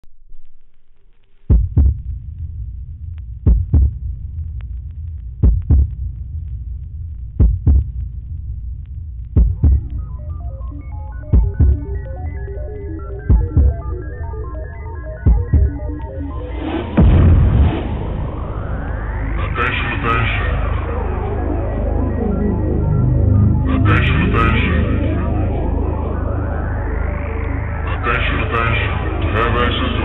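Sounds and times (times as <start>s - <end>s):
bass thumps: 1.5s - 10.0s, 11.3s - 11.9s, 13.2s - 13.8s, 15.2s - 27.9s
low droning hum: 1.5s - 30.0s
stepping synthesizer melody: 9.5s - 30.0s.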